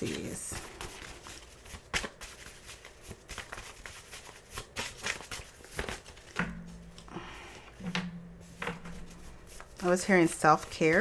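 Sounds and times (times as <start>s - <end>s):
woman speaking: 0.0s - 0.6s, 9.8s - 11.0s
paper cards being handled: 0.0s - 11.0s.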